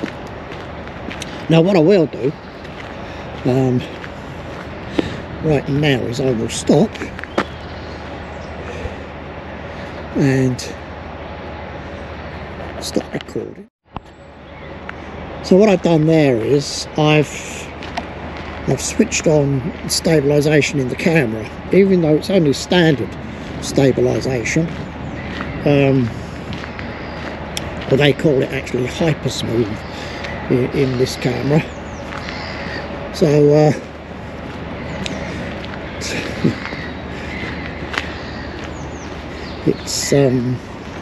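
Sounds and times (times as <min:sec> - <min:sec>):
footsteps on dirt path: 0:00.0 - 0:16.6, 0:17.2 - 0:41.0
outdoor background noise: 0:00.0 - 0:41.0.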